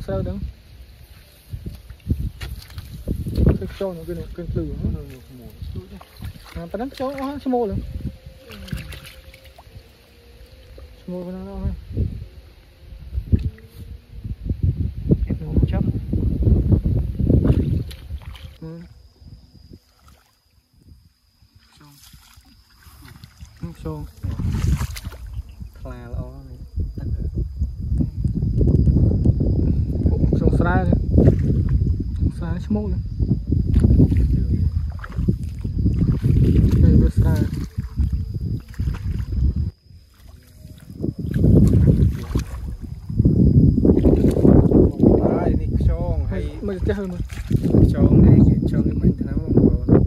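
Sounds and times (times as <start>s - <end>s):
wind buffeting microphone: 0.0s - 19.9s, 20.7s - 50.0s.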